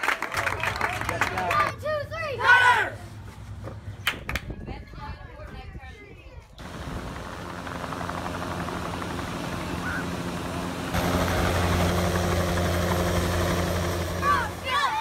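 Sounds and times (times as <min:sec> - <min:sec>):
helicopter humming: 0:06.6 - 0:15.0
children shouting and shrieking: 0:14.2 - 0:15.0.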